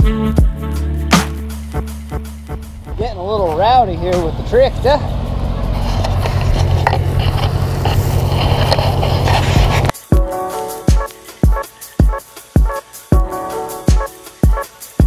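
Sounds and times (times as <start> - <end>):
music with drum beat: 0.0 - 4.5, 9.5 - 15.0
tractor engine running: 2.4 - 9.9.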